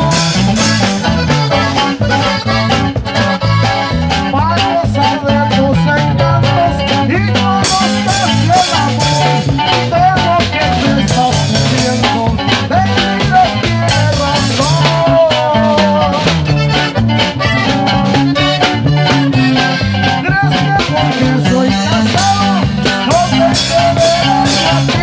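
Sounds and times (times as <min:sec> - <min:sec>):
bass line: 0:00.0 - 0:25.0
button accordion: 0:00.0 - 0:25.0
man singing: 0:00.0 - 0:25.0
steady beat: 0:00.0 - 0:25.0
twelve-string guitar strumming: 0:00.0 - 0:25.0.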